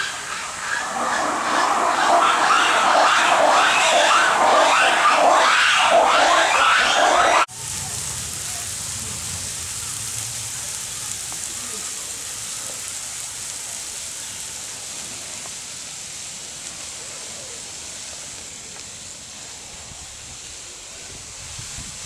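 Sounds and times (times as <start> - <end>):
low outdoor rumble: 7.4 - 22.0.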